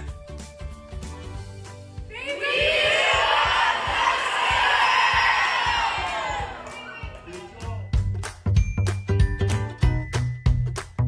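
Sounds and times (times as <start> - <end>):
children shouting and cheering: 2.1 - 7.6.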